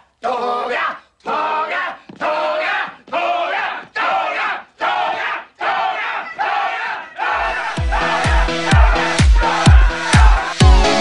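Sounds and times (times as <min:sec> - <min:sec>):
men chanting in unison: 0:00.2 - 0:11.0
electronic dance music: 0:07.4 - 0:11.0.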